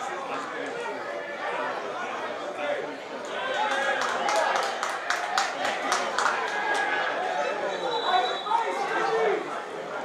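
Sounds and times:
crowd of spectators: 0.0 - 10.0
players shouting: 0.0 - 10.0.

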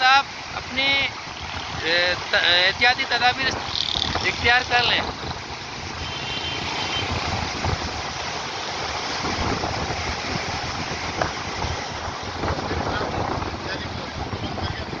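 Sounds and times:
turbulent water rushing: 0.0 - 15.0
wind buffeting microphone: 3.5 - 6.0, 7.0 - 8.2, 8.8 - 15.0.

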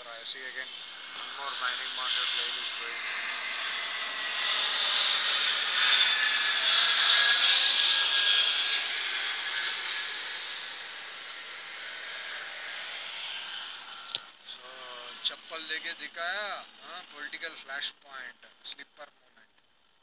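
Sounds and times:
jet airliner flying overhead: 0.0 - 15.9.

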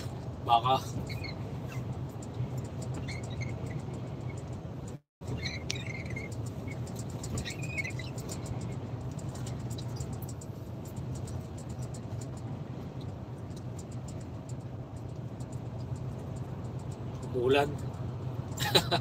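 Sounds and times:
truck engine and road drone: 0.0 - 19.0.

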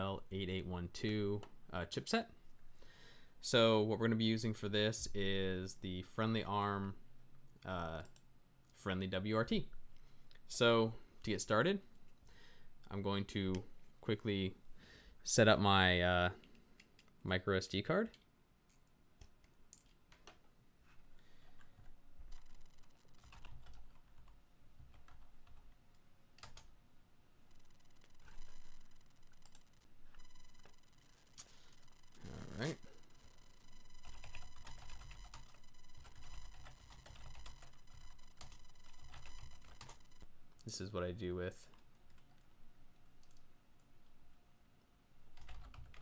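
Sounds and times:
faint steady hum: 0.0 - 46.0
computer keyboard typing: 21.4 - 25.8, 26.4 - 26.7, 27.5 - 40.3, 43.2 - 43.5, 45.3 - 46.0
person speaking: 28.2 - 40.0.

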